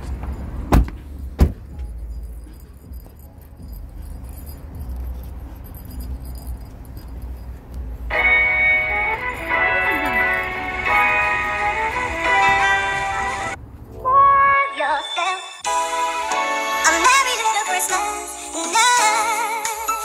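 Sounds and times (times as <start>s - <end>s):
low rumble of handling: 0.0s - 8.1s
car door knocks: 0.7s - 1.7s
background music: 8.0s - 20.0s.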